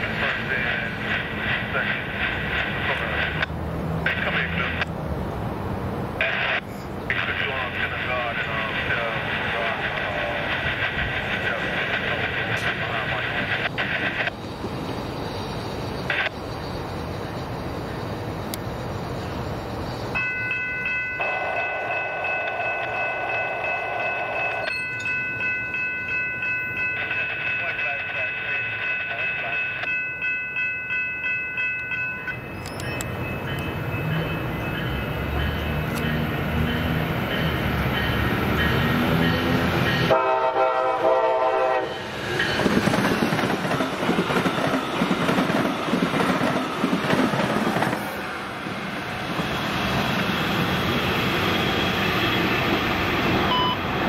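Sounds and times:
train rumbling on rails: 0.0 - 54.0
train horn blasts: 40.0 - 42.0.

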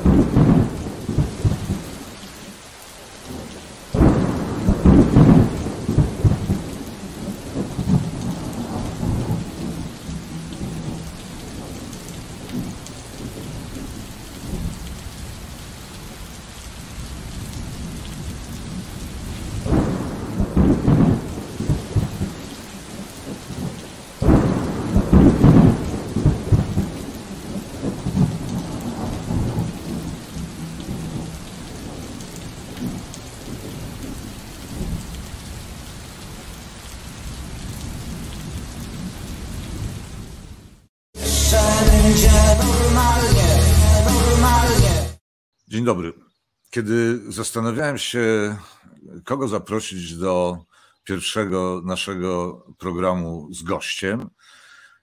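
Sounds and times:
thunder rumbles: 0.0 - 2.0, 3.3 - 15.4, 16.8 - 35.7
steady rain hiss: 0.0 - 45.0.

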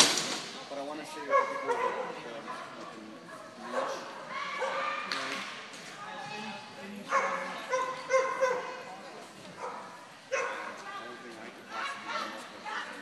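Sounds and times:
dog barking and yipping: 7.1 - 8.7.

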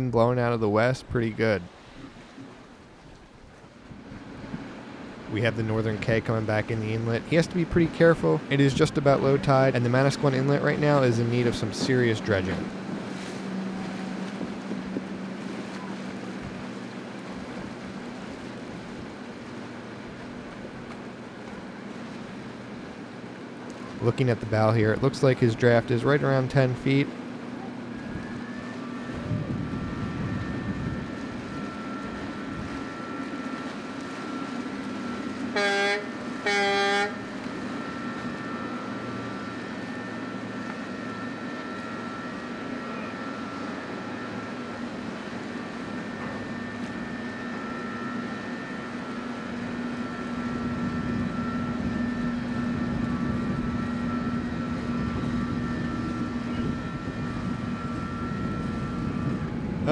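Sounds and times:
ship horn blasts: 1.3 - 59.9
low drone: 4.2 - 59.9.

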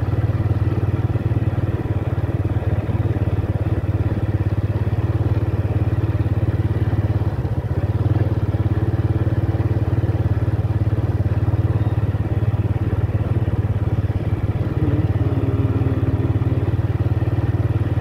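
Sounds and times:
small motorcycle engine: 0.0 - 18.0.

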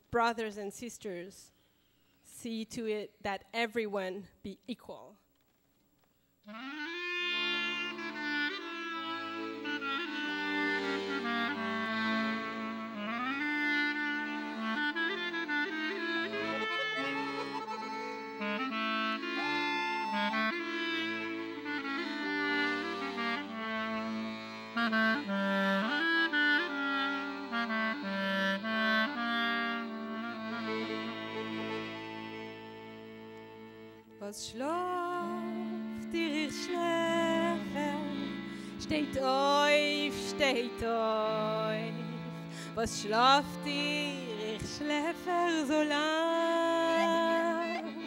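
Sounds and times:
accordion chords: 6.4 - 48.0
clarinet melody: 6.4 - 48.0.

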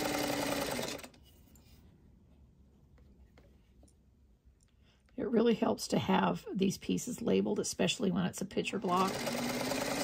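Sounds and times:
sewing machine running: 0.0 - 1.2, 8.8 - 10.0.

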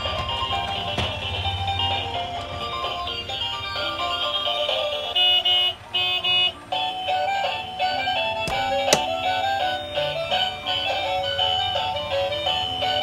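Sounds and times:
electronic toy tune beeping: 2.9 - 13.0.

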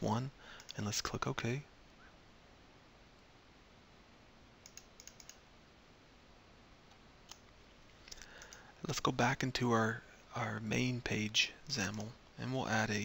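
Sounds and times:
low hiss: 0.0 - 13.0
computer mouse clicks: 0.6 - 0.8, 4.6 - 5.4, 6.9 - 8.7.

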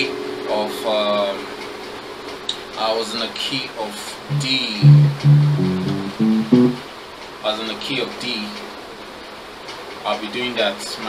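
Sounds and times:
electronic keyboard notes: 4.3 - 6.8.

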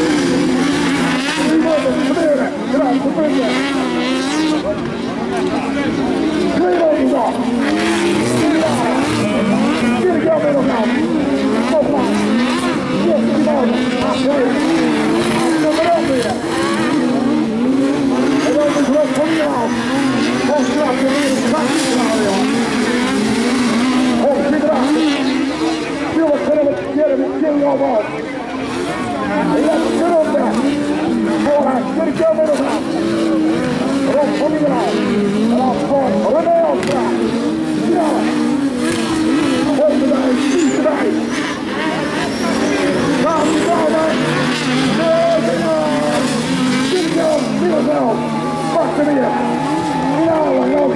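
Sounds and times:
race car engines revving: 0.0 - 50.9.

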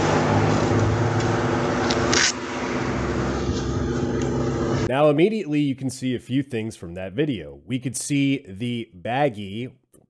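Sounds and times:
road traffic: 0.0 - 4.9
steady engine hum: 0.0 - 4.9.

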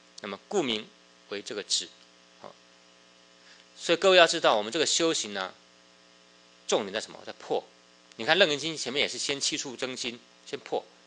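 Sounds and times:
electrical mains hum: 0.0 - 11.0
man speaking: 0.2 - 2.6, 3.8 - 5.6, 6.7 - 10.9.

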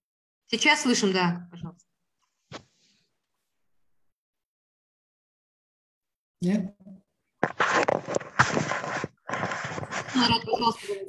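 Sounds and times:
garbled crackling voice: 9.9 - 11.0.

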